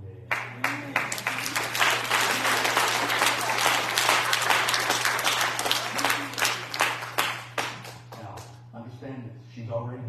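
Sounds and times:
low steady hum: 0.0 - 10.0
crowd clapping: 0.3 - 8.6.

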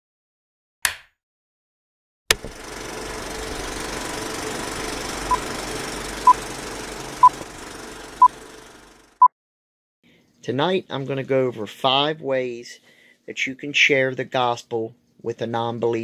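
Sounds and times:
film projector rattling whir: 2.3 - 9.2.

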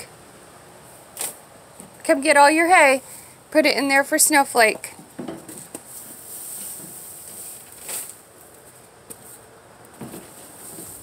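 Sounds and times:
hay rustling and scraping on concrete: 5.4 - 11.0.

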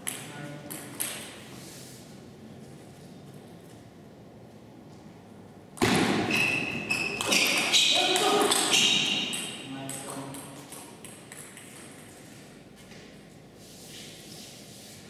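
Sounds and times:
table tennis ball hits: 5.8 - 12.0
sharp high squeaks: 6.3 - 9.6.

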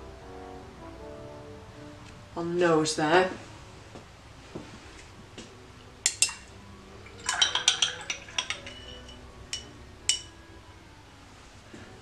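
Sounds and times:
paintbrush clinking on palette: 7.2 - 10.3.

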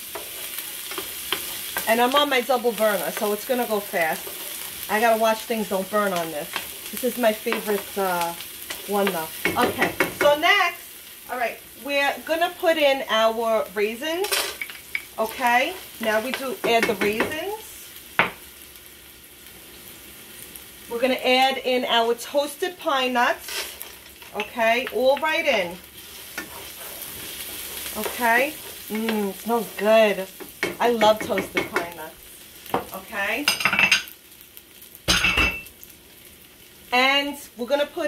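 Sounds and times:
onions sizzling in oil: 0.0 - 38.0.

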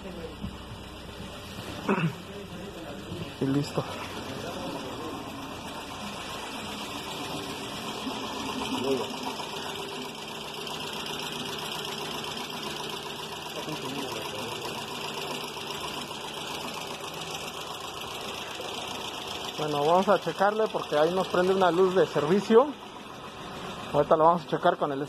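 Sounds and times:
car engine idling: 0.0 - 25.0
rapid valvetrain ticking: 2.7 - 24.1.

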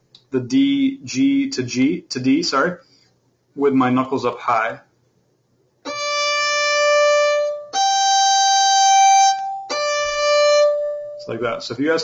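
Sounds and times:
violin long bowed notes: 5.9 - 11.4.

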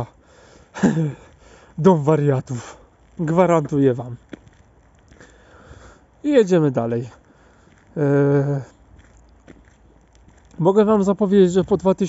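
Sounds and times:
man's drawn-out hesitation sound: 7.9 - 8.8.

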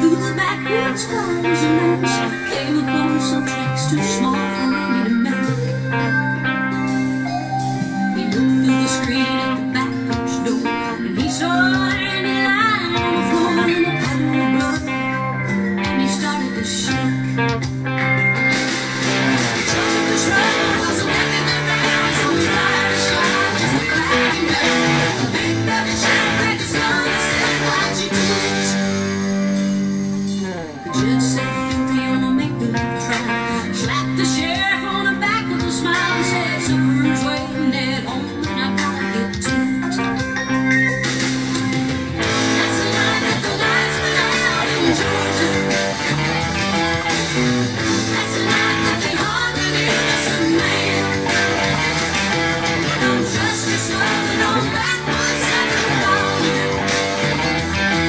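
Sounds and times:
band backing: 0.0 - 58.0
electric guitar lead: 0.0 - 58.0.

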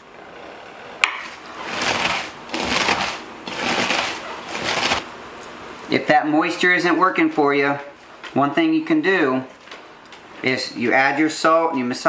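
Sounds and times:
hands squeezing shredded cabbage: 1.1 - 5.1.

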